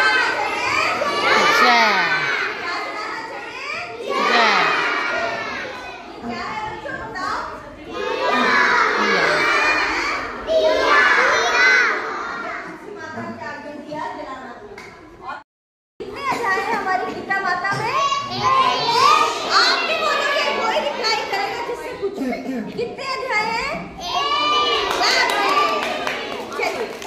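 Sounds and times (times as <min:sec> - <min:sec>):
children calling out together: 0:00.0 - 0:06.6, 0:07.9 - 0:12.8, 0:18.0 - 0:21.6, 0:23.9 - 0:26.4.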